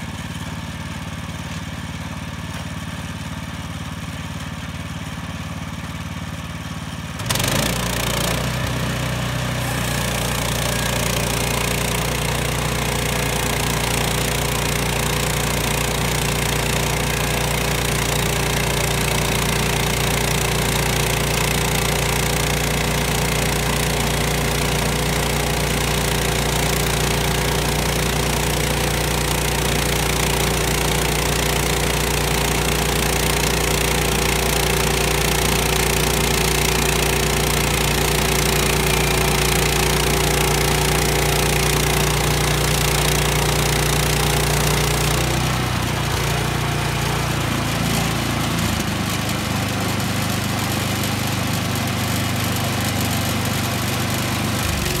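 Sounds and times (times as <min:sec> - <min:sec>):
sawmill engine running: 0:00.0 - 0:55.0.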